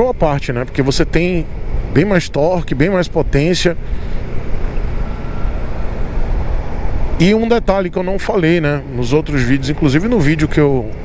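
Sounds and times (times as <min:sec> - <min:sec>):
scooter road and engine noise: 0:00.0 - 0:11.0
wind rushing over microphone: 0:03.2 - 0:09.8.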